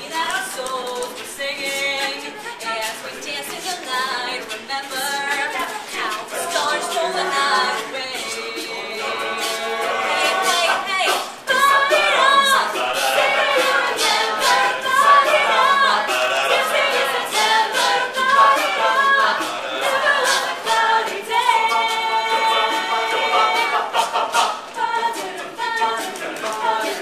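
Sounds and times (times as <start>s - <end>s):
a cappella group singing: 0.0s - 27.0s
vocal percussion beat: 0.0s - 27.0s.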